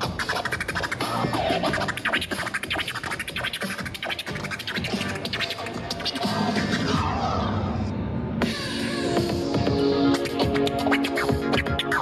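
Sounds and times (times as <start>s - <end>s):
music beat playing: 0.0s - 7.0s, 8.3s - 12.0s
vinyl record scratching: 0.0s - 7.6s, 8.4s - 12.0s.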